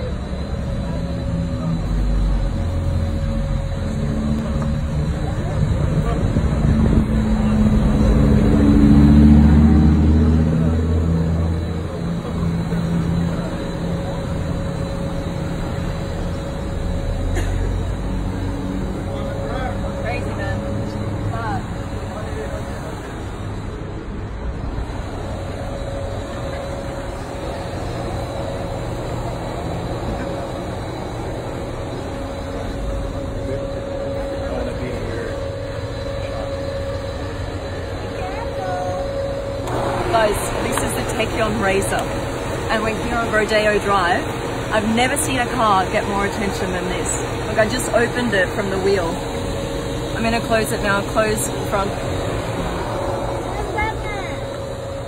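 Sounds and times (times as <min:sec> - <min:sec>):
car engine running: 0:00.0 - 0:55.0
crowd voices: 0:00.0 - 0:55.0.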